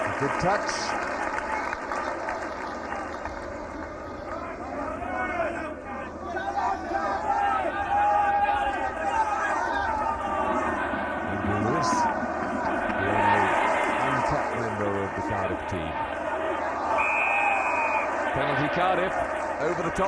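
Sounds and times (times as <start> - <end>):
stadium crowd noise: 0.0 - 20.0
referee's whistle blast: 16.9 - 18.1.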